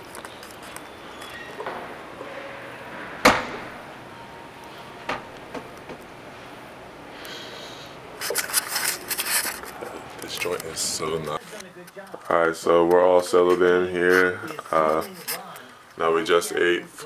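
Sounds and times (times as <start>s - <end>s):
large room background hush: 0.0s - 17.0s
loud sharp bang: 1.6s - 4.2s.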